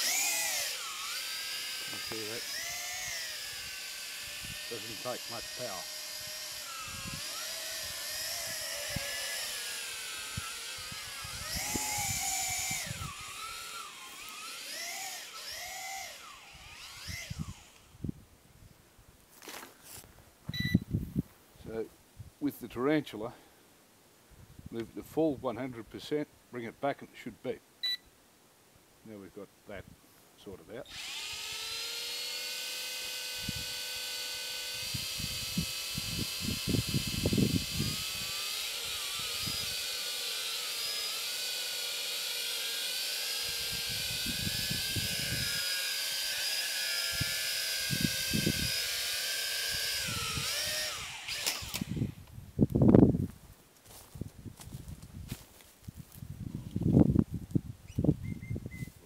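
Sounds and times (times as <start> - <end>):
toy drone motors whining: 0.0 - 18.0, 30.8 - 52.3.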